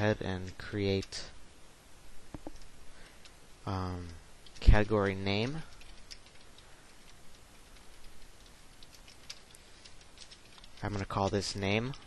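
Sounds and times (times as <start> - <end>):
computer keyboard typing: 4.4 - 12.0.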